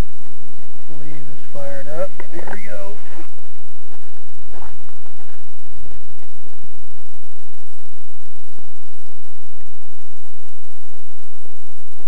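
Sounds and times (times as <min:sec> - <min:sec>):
low buffeting rumble: 0:00.0 - 0:12.0
wind rush over microphone: 0:00.0 - 0:12.0.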